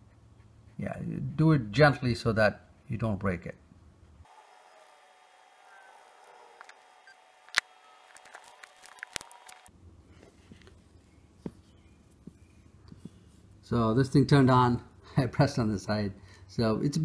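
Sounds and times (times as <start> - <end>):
smartphone handling: 7.4 - 13.3.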